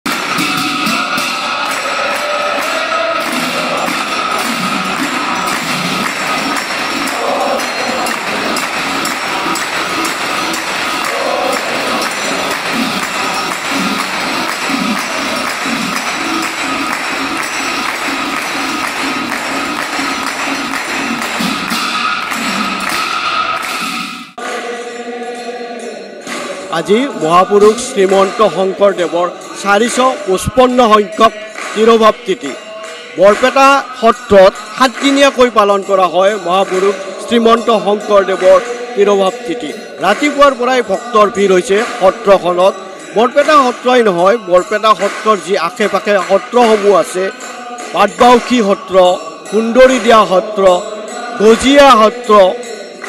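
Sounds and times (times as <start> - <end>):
hand cymbals struck rapidly: 0.1 - 53.0
devotional group singing: 0.4 - 23.0, 24.4 - 31.8, 35.9 - 43.6, 46.5 - 53.0.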